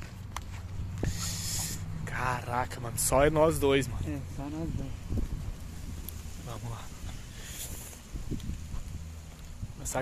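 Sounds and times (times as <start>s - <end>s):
short hiss: 1.0s - 1.8s.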